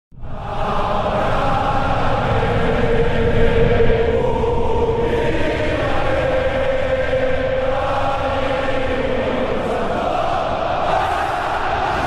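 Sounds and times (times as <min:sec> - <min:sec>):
low rumble: 0:00.1 - 0:10.8
choir-like held tone: 0:00.2 - 0:12.0.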